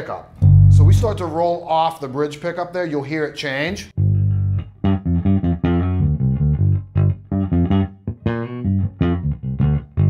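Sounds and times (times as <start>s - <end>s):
plucked bass guitar line: 0.4s - 1.4s, 4.0s - 10.0s.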